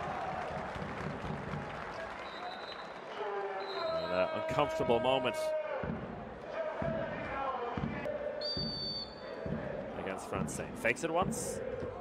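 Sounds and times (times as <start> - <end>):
referee's whistle: 2.2 - 2.9, 3.6 - 4.6, 8.4 - 9.2
arena ambience with low thuds: 4.5 - 12.0.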